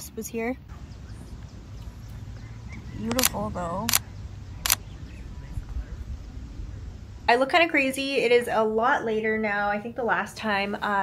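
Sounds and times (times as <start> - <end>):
low uneven beach rumble: 0.4 - 10.5.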